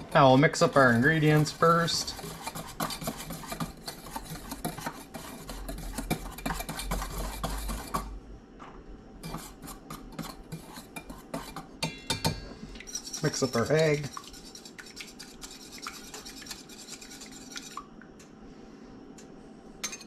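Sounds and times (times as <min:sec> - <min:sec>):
wire whisk scraping metal bowl: 0:00.0 - 0:08.1, 0:09.2 - 0:11.7, 0:12.9 - 0:17.8.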